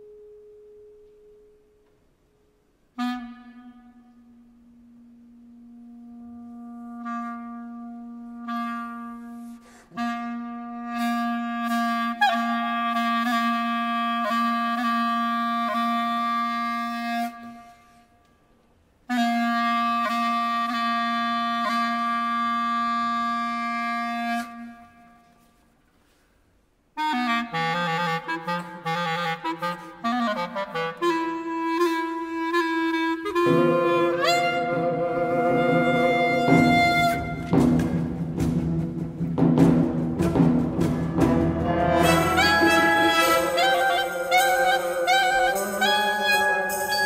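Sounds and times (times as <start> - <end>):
clarinet sustained low notes: 0.0 - 18.1, 27.0 - 38.4, 40.2 - 47.0.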